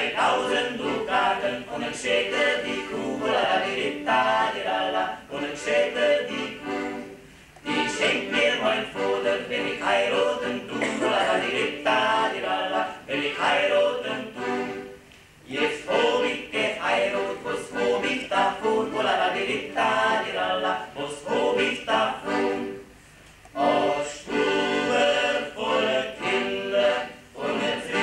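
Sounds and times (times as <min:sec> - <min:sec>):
male vocal quartet singing: 0:00.0 - 0:14.9, 0:15.5 - 0:22.8, 0:23.5 - 0:28.0
accordion: 0:00.0 - 0:28.0.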